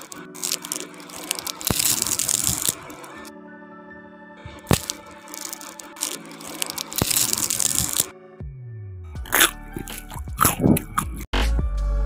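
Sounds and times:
crisp snacks crunching: 0.0 - 3.3, 4.7 - 8.1, 9.3 - 11.3
soft background music: 0.0 - 12.0.

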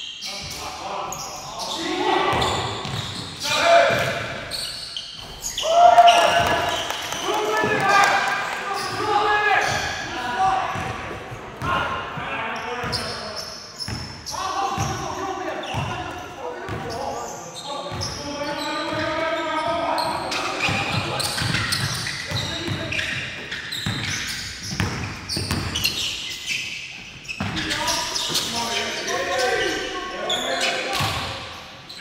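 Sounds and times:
players calling and shouting: 0.0 - 32.0
basketball bouncing on wooden floor: 2.3 - 3.2, 23.8 - 25.9.

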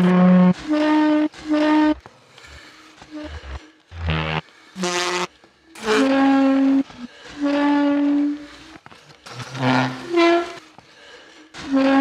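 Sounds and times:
horn blasts: 0.0 - 10.7, 11.6 - 12.0.

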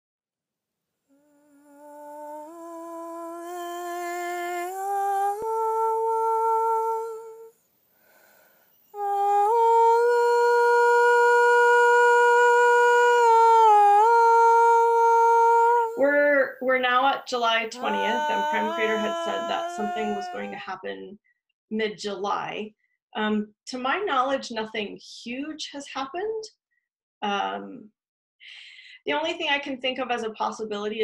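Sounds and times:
person humming long notes: 1.2 - 7.5, 9.0 - 16.4, 17.4 - 20.7.

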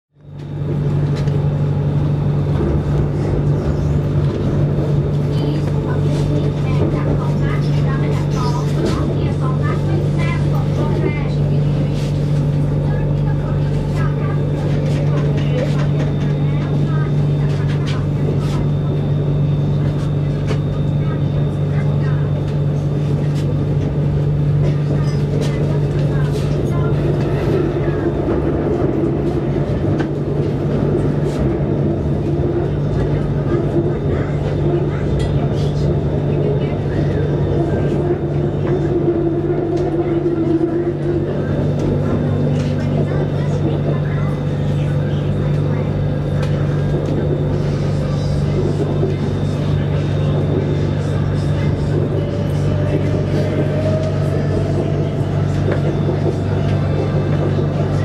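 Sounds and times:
train running on elevated track: 0.2 - 58.0
people talking: 0.6 - 58.0.

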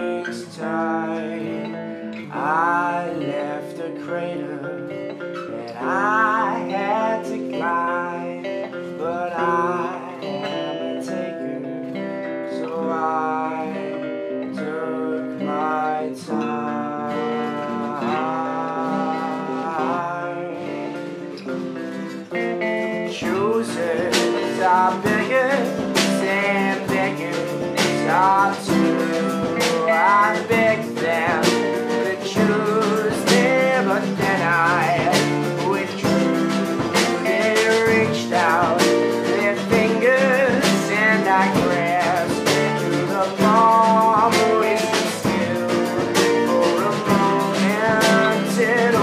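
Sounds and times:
acoustic guitar strumming: 0.0 - 49.0
electric guitar lead lines: 0.0 - 49.0
mandolin strumming: 16.4 - 49.0
snare drum and cymbal beat: 24.1 - 49.0.

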